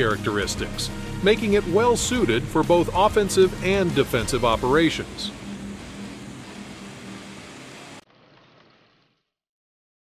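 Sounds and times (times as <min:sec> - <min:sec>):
boat engine hum: 0:00.0 - 0:08.9
rushing wake noise: 0:01.7 - 0:08.9.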